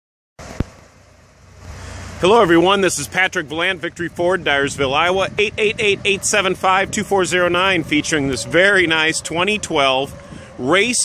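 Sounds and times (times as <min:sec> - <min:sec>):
vehicle engine idling: 0:00.4 - 0:11.0.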